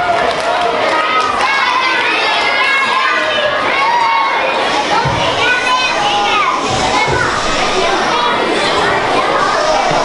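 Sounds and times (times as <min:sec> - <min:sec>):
children chattering and calling out: 0:00.0 - 0:10.0.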